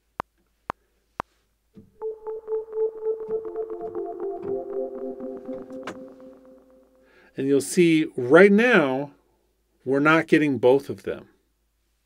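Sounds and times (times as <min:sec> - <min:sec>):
synthesizer pulsing note: 0:02.0 - 0:07.3.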